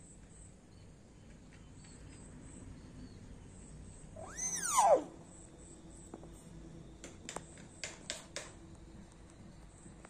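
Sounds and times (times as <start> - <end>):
myna whistle-like call: 4.2 - 5.2.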